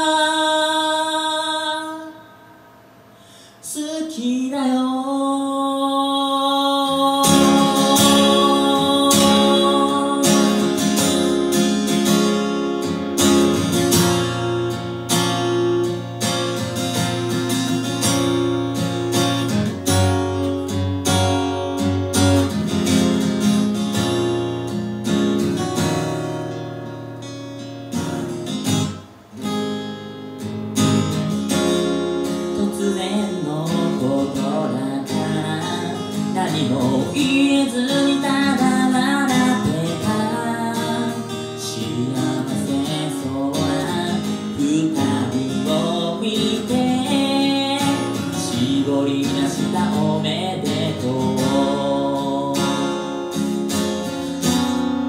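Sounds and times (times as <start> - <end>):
acoustic guitar strummed and picked: 0.0 - 2.4, 3.0 - 55.0.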